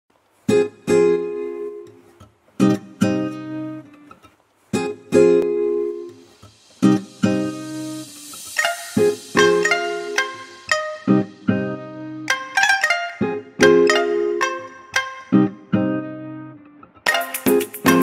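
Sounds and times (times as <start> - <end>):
strummed acoustic guitar: 0.4 - 18.0.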